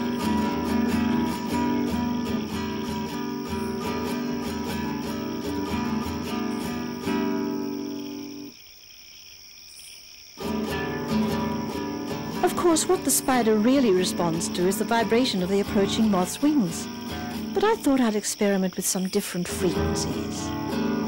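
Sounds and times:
acoustic guitar strumming: 0:00.0 - 0:08.5, 0:10.4 - 0:18.4, 0:19.4 - 0:21.0.

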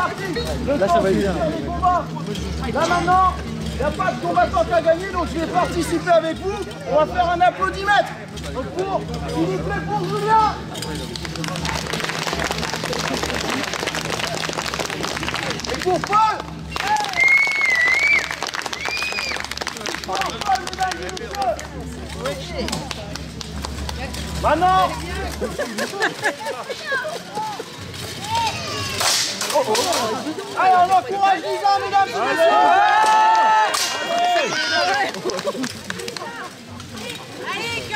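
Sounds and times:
scattered voices: 0:00.0 - 0:18.6, 0:19.3 - 0:37.9
crowd applauding: 0:11.2 - 0:21.9, 0:34.1 - 0:36.5.

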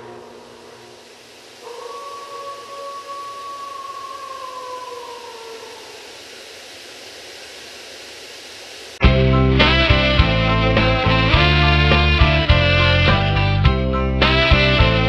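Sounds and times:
faint steady hiss: 0:00.0 - 0:09.0
wolf howling: 0:01.6 - 0:06.4.

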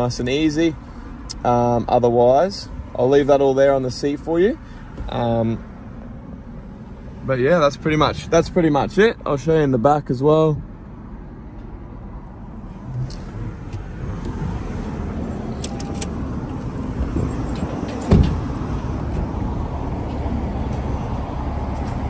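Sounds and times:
car rumbling: 0:00.0 - 0:22.0
loud thud: 0:17.1 - 0:18.7.

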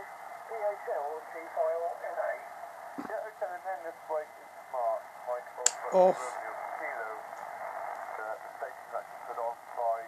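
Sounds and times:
radio band noise hiss: 0:00.0 - 0:10.0.

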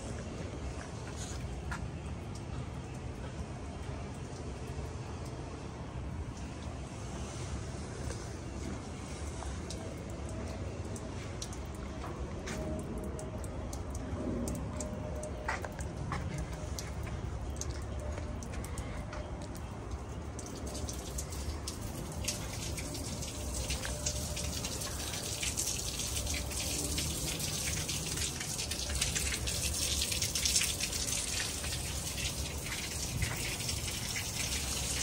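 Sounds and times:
concrete pump rumbling: 0:00.0 - 0:35.0
light ticks and drips: 0:00.0 - 0:35.0.

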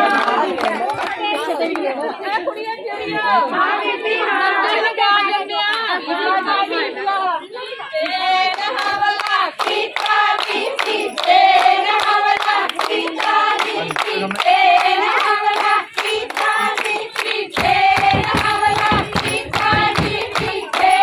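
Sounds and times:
rhythmic hand-clapping: 0:00.0 - 0:21.0
women singing folk couplets: 0:01.2 - 0:13.8, 0:14.4 - 0:21.0.

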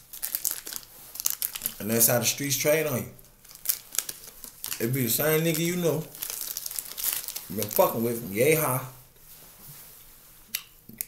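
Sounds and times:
wrapper crinkling: 0:00.0 - 0:08.9.

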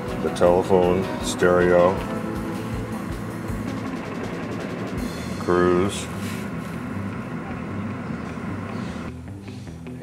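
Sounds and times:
car engine idling hum: 0:00.0 - 0:10.0.

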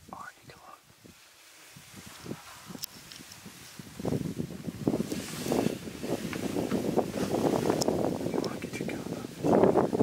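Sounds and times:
person whispering: 0:00.1 - 0:00.8, 0:08.4 - 0:09.3.

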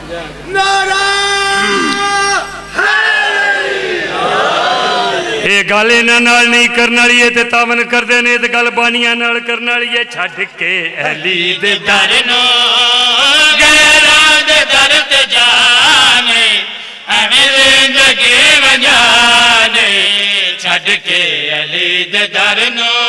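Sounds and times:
man chanting into a microphone: 0:00.4 - 0:02.8, 0:05.4 - 0:23.0.

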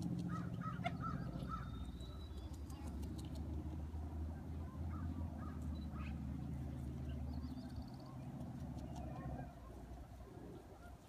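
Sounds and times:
bird calling: 0:00.2 - 0:02.9.

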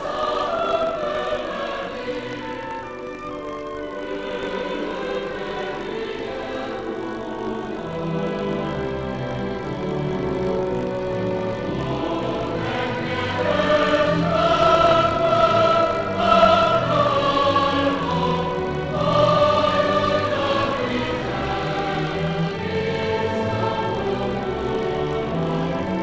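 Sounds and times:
choir singing sacred music: 0:00.0 - 0:26.0
orchestral accompaniment: 0:00.0 - 0:26.0.

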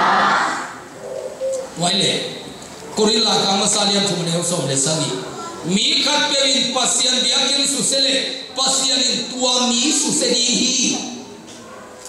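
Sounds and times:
man speaking through microphone: 0:01.7 - 0:11.4.

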